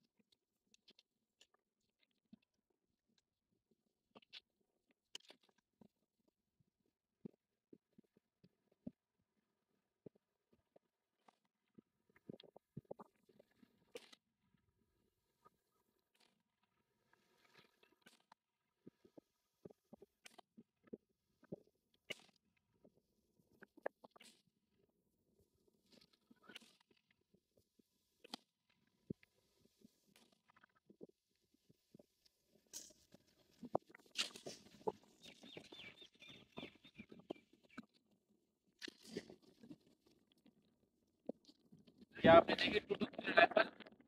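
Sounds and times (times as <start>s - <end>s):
faint bird chirping: 34.9s - 38.0s.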